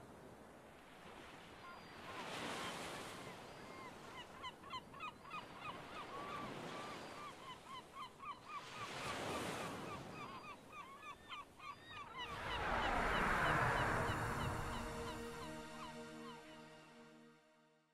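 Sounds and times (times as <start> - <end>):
rushing noise: 12.2 - 16.0
music: 14.7 - 17.9.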